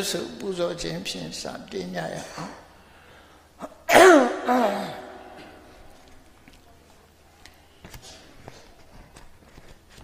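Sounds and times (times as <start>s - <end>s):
faint low room noise: 0.0s - 10.0s.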